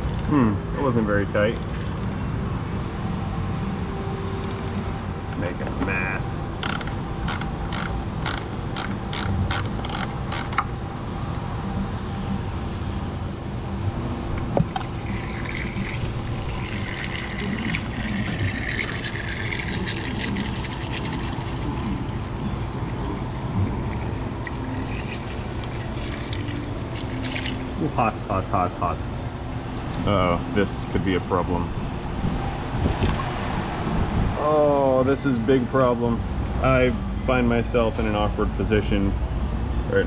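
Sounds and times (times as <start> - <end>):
oil pouring into drain pan: 14.6 - 22.3, 24.0 - 27.7.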